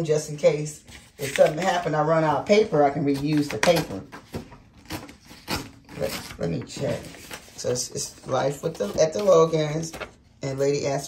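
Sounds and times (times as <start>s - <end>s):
paper rustling: 0.8s - 10.6s.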